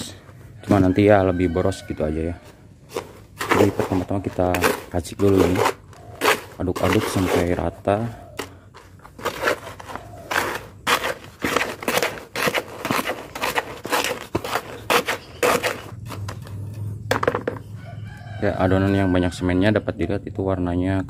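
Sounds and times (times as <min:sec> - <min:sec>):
trowel scraping dry sand mix: 0:02.4 - 0:16.4.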